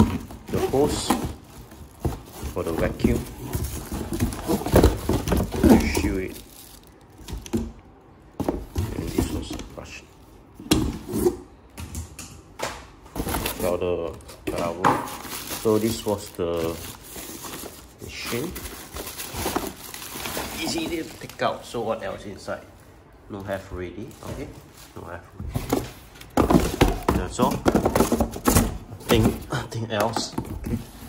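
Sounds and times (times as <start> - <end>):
plastic hose rustling and knocking: 0.0 - 9.8, 23.6 - 31.0.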